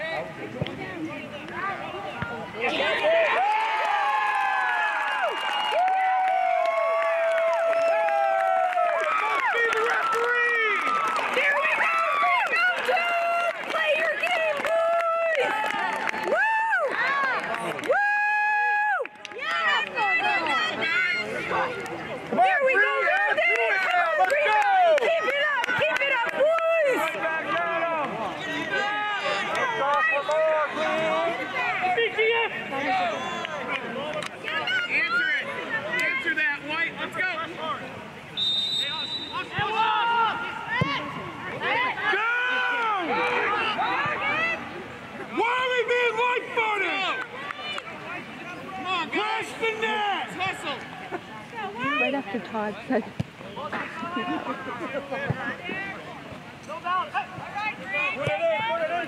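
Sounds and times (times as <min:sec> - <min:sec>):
crowd cheering and shouting: 0:01.6 - 0:59.0.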